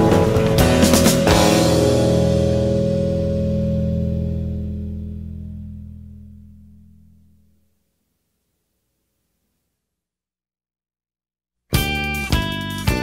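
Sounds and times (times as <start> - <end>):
rock band final chord: 0.0 - 7.4.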